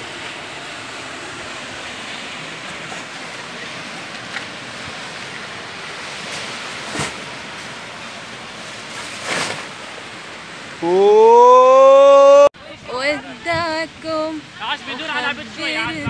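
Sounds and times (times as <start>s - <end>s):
sea waves breaking on sand: 0.0s - 10.9s.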